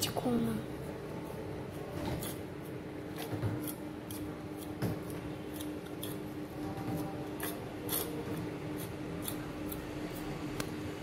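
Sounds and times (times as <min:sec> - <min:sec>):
tongue clicking and scraping metal bowl: 0:03.2 - 0:06.4, 0:07.4 - 0:09.9.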